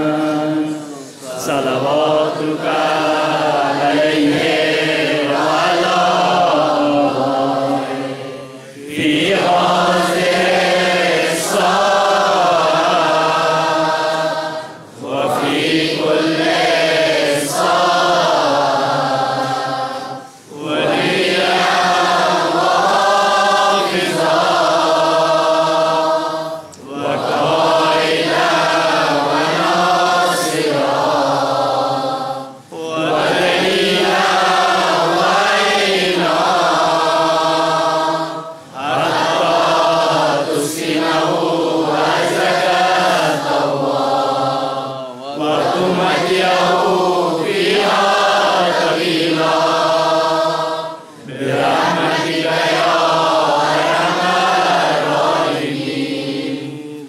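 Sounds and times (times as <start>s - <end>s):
crowd chanting in unison: 0.0s - 57.0s.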